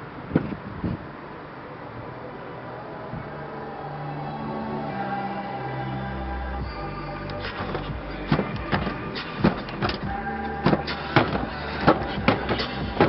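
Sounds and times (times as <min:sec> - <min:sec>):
electronic background music: 0:01.3 - 0:13.0
sharp percussive hits: 0:07.4 - 0:13.0.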